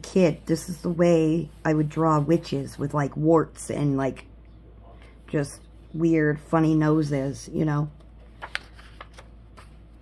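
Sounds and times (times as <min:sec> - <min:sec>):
paper page turning: 0:08.0 - 0:10.0.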